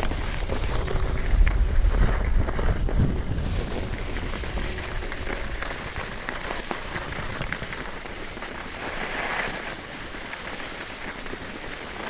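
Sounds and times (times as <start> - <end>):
skis scraping over snow: 0.0 - 12.0
wind rumble on microphone: 0.0 - 12.0.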